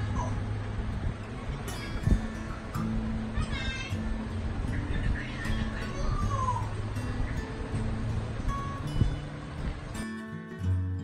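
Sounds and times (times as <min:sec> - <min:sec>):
steady low hum: 0:00.0 - 0:10.6.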